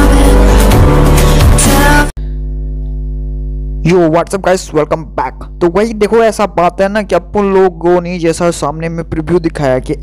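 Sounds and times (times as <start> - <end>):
electrical mains hum: 2.2 - 10.0
man talking: 3.8 - 10.0.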